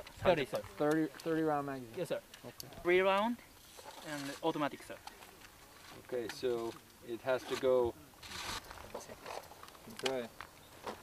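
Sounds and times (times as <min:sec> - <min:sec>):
rifle action sliding rasp: 0:08.2 - 0:08.7.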